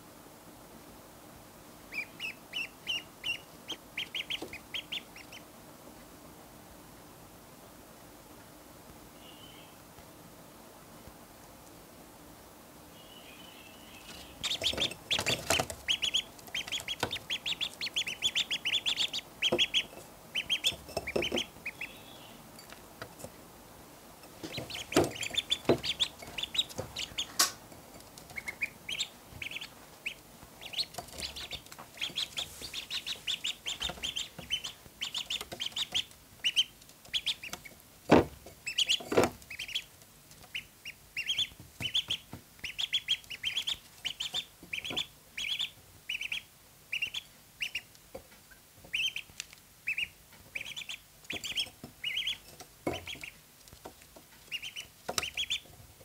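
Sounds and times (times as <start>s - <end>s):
ducklings peeping: 1.7s - 6.2s, 7.9s - 10.0s, 12.8s - 23.6s, 24.2s - 56.0s.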